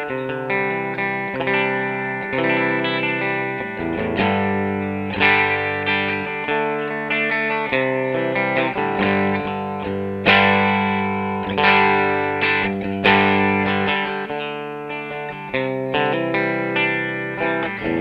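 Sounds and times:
electric guitar chords strummed: 0:00.0 - 0:18.0.

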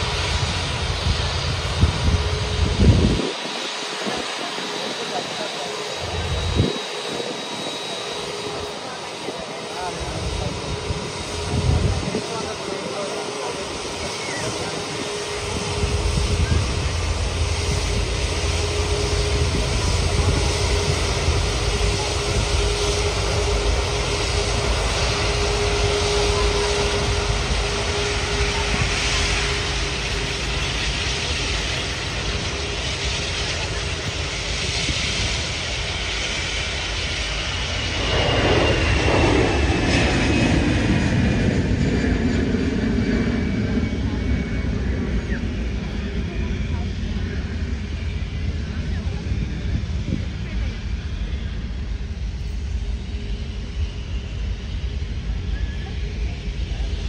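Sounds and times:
jet engines rumbling and hissing: 0:00.0 - 0:57.0.

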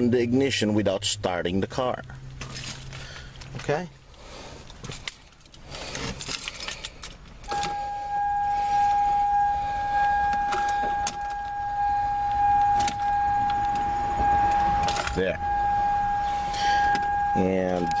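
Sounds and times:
vehicle warning tone: 0:07.5 - 0:18.0.

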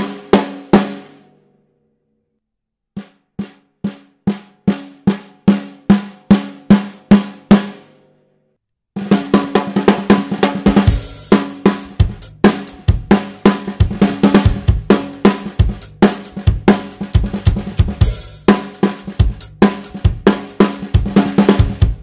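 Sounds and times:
drum kit playing: 0:00.0 - 0:01.2, 0:03.0 - 0:07.8, 0:09.0 - 0:22.0.

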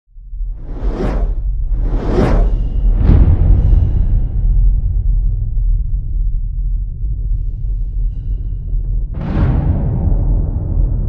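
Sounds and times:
deep low rumble: 0:00.1 - 0:11.0
whoosh: 0:00.4 - 0:05.2.

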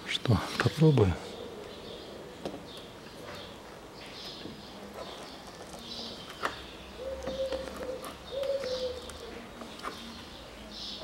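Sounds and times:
pigeon cooing: 0:07.0 - 0:10.1.

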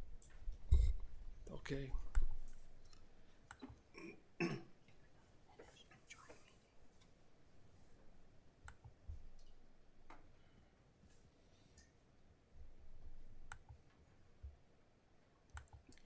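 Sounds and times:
low thump: 0:00.7 - 0:01.0.

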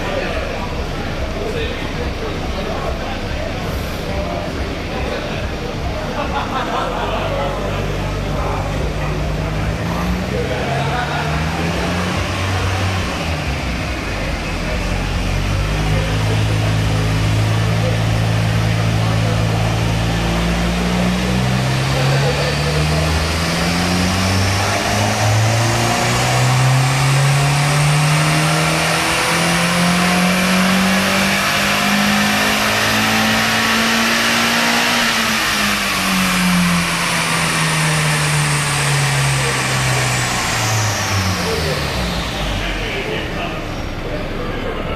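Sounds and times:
car engine revving: 0:00.0 - 0:44.9.

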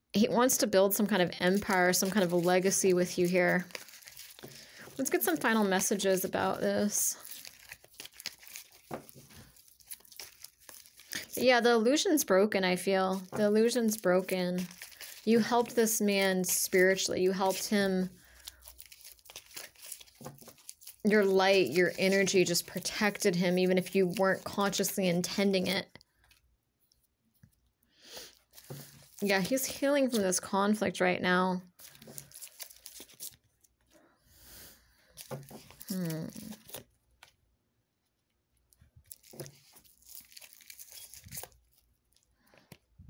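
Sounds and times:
cards rustling: 0:01.0 - 0:26.4, 0:28.2 - 0:30.4, 0:31.8 - 0:33.9, 0:35.1 - 0:37.4, 0:39.0 - 0:42.8.

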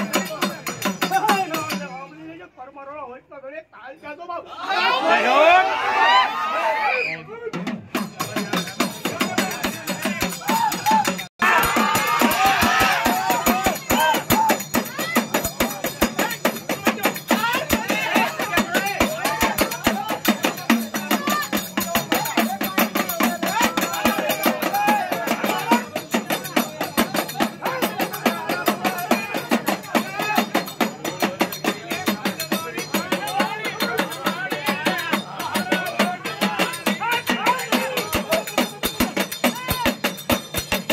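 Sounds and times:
hand drums beating fast: 0:00.0 - 0:02.0, 0:07.5 - 0:40.9
men singing and calling: 0:00.0 - 0:02.0, 0:07.5 - 0:40.9.

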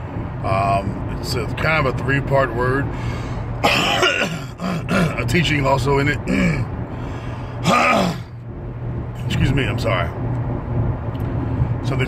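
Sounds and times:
low car cabin hum: 0:00.0 - 0:12.0
man coughing: 0:03.6 - 0:05.3, 0:06.3 - 0:06.7, 0:07.6 - 0:08.3.

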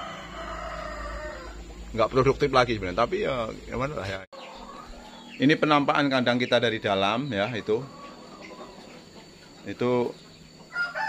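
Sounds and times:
rooster crowing: 0:00.0 - 0:03.6, 0:10.6 - 0:11.0.

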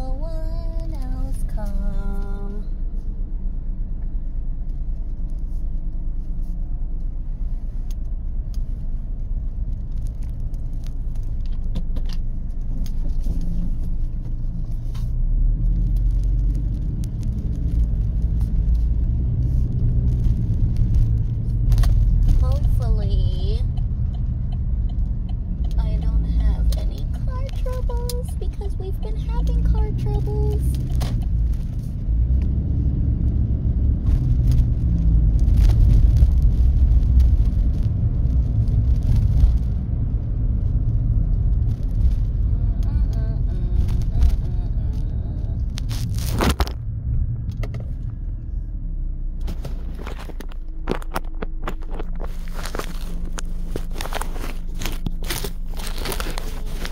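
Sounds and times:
engine and road rumble: 0:00.0 - 0:56.9.

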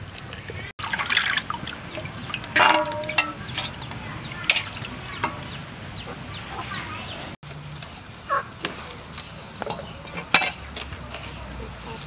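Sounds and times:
clicks and knocks: 0:02.6 - 0:03.8.

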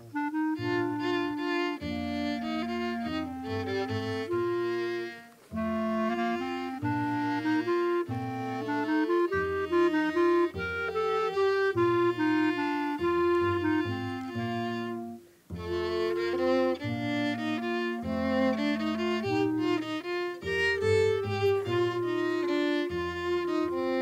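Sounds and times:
double bass: 0:00.0 - 0:24.0
violin melody: 0:00.0 - 0:24.0.

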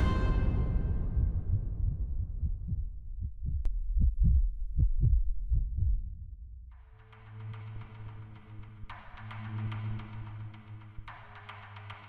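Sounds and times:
music: 0:00.0 - 0:02.7, 0:05.7 - 0:12.0
heartbeat thumps: 0:01.0 - 0:06.7.

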